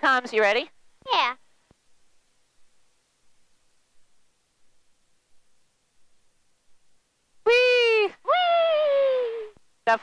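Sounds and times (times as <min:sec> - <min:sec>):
girl whooping: 0:07.5 - 0:09.6.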